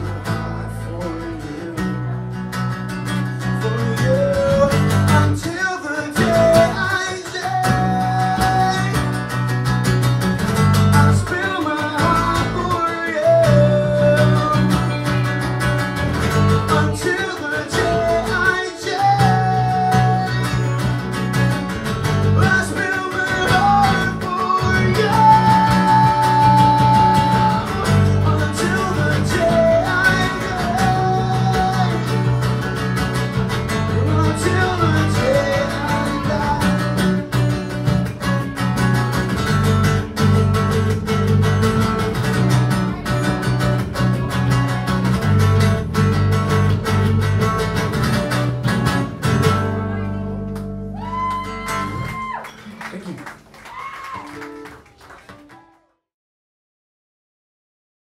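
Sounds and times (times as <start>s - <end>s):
strummed acoustic guitars: 0.0s - 53.5s
men singing: 3.6s - 9.1s, 16.7s - 20.5s, 22.3s - 32.3s, 33.8s - 37.0s.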